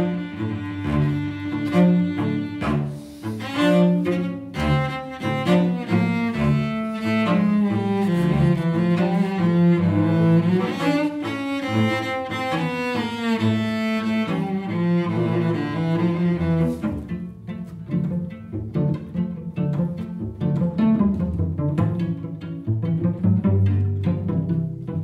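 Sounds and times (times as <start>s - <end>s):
cellos playing a tango: 0.0s - 25.0s.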